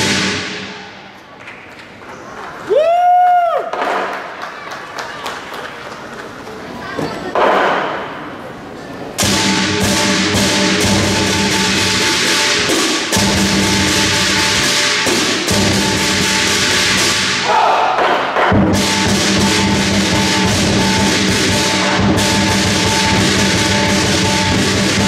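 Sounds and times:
clashing cymbals: 0.0 - 1.1, 9.2 - 17.5, 18.4 - 25.0
ringing gong: 9.2 - 16.8, 18.8 - 25.0
large drum beating fast: 9.2 - 17.3, 18.0 - 25.0.

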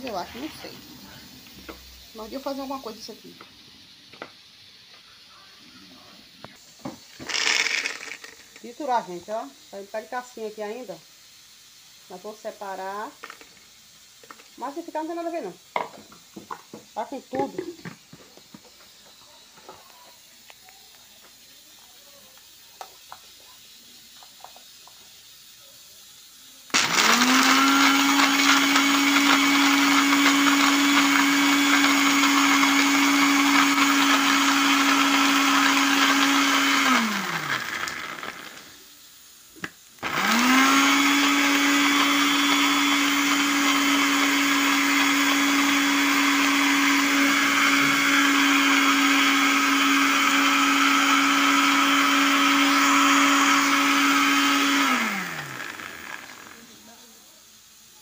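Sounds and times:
electric blender grinding: 7.2 - 8.9, 26.7 - 38.8, 39.6 - 56.9.

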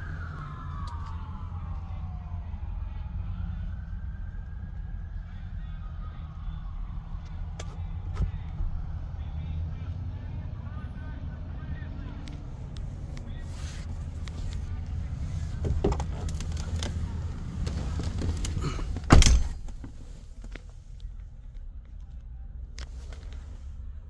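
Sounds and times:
vehicle rumble inside cab: 0.0 - 24.0.

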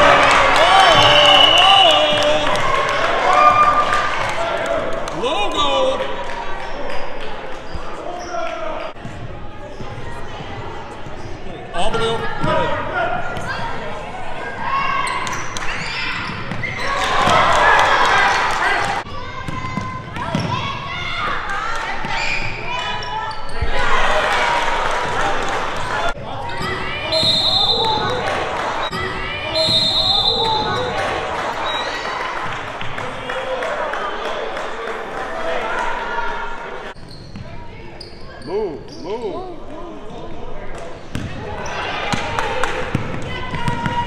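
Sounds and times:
voices of spectators and players: 0.0 - 44.0.

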